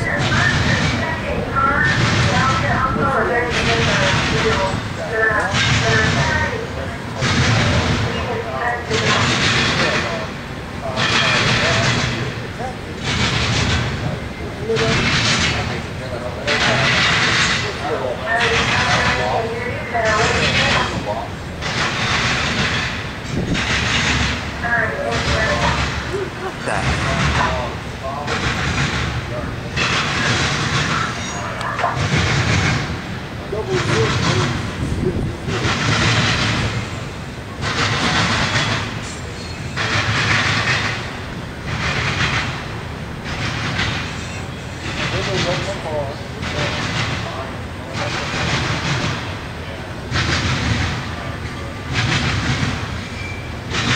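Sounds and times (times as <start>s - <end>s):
freight train rumble: 0.0s - 53.9s
hissing rail noise: 0.0s - 53.9s.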